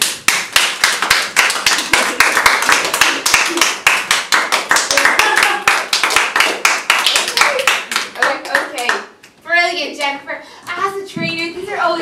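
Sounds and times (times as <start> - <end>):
people clapping: 0.0 - 9.4.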